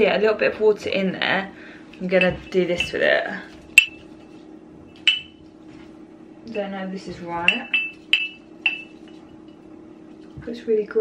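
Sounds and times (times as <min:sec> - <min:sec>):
utensil clinking against mug: 0:05.1 - 0:05.3.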